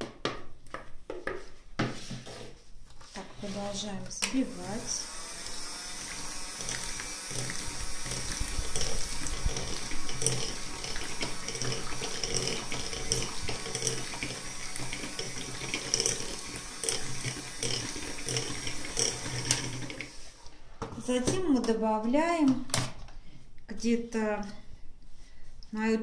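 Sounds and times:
electric hand mixer running: 0:04.3 - 0:20.5
batter sloshing: 0:06.0 - 0:20.4.

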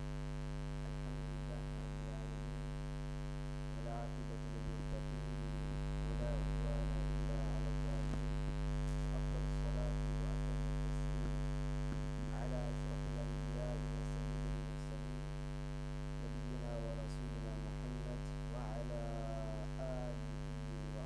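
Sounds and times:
mains hum: 0:00.0 - 0:21.0
faint wavering sounds: 0:03.6 - 0:11.4.

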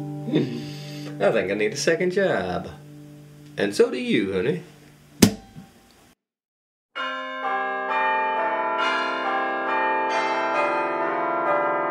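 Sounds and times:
bell-like chimes music: 0:07.0 - 0:11.9.

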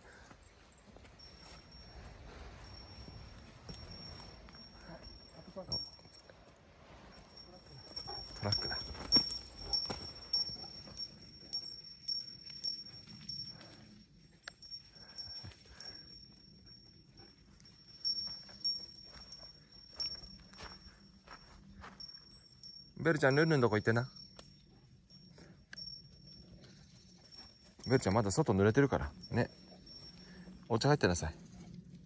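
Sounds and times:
light footsteps: 0:00.0 - 0:13.8, 0:14.6 - 0:22.8
high thin tinkling pips: 0:01.0 - 0:31.3.

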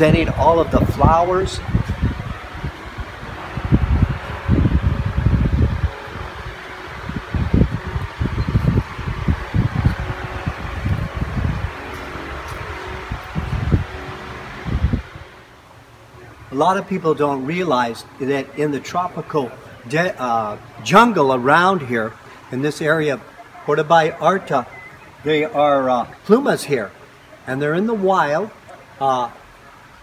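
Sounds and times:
wind buffeting microphone: 0:00.0 - 0:15.4
steady rushing background: 0:00.2 - 0:15.5.

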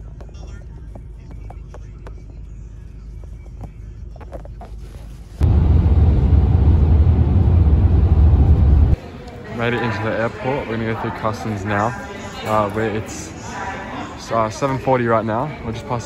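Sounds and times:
car cabin road rumble: 0:05.4 - 0:09.0
rush of road and wind noise: 0:05.4 - 0:09.0.

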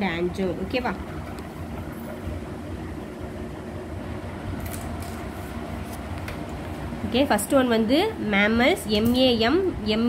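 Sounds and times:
low background rumble and hum: 0:00.0 - 0:10.0.

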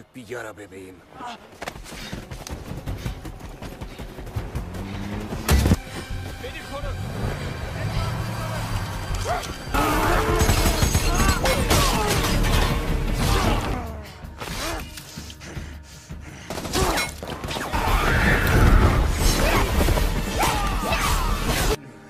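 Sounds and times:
action film music: 0:00.0 - 0:22.0
people shouting: 0:09.1 - 0:15.0, 0:16.7 - 0:21.8.

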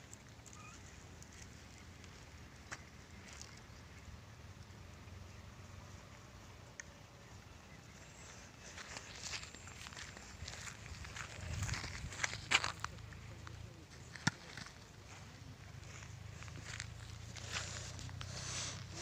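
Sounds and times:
footsteps on dry grass: 0:08.0 - 0:13.4, 0:14.0 - 0:19.0.

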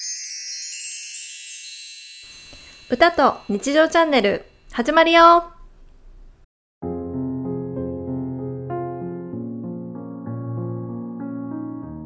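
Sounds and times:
bright tinkling chime: 0:00.0 - 0:05.2
woman speaking: 0:02.9 - 0:05.6.

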